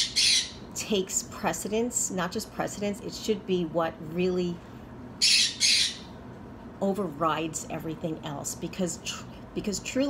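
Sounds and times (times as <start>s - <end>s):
parrot squawking: 0.0s - 0.6s, 5.2s - 6.1s.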